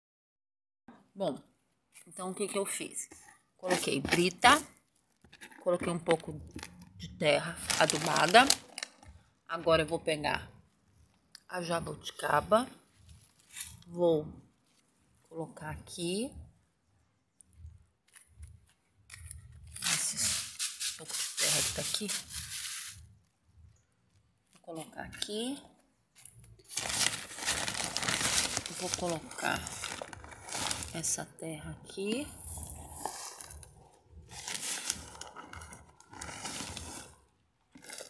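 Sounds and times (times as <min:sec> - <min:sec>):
rustling handling noise: 0:07.6 - 0:09.3, 0:12.8 - 0:13.9, 0:17.6 - 0:24.8, 0:25.8 - 0:31.2, 0:32.5 - 0:38.0
soil poured into plastic planter: 0:19.8 - 0:23.2, 0:34.3 - 0:38.0.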